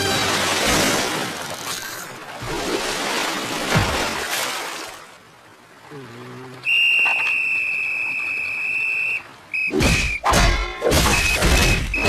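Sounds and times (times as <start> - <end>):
high-pitched whistle: 6.6 - 10.2, 11.1 - 12.0.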